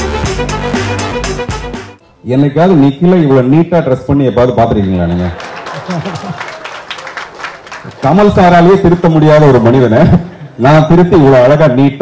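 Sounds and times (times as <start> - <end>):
man's amplified speech: 2.2 - 5.4, 7.9 - 12.0
audience clapping: 4.7 - 9.6.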